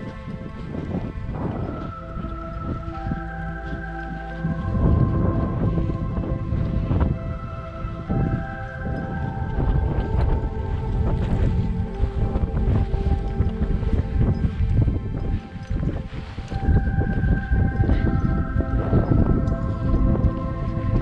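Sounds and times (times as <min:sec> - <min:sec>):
background music with held notes: 0:00.0 - 0:21.0
wind buffeting microphone: 0:00.0 - 0:21.0.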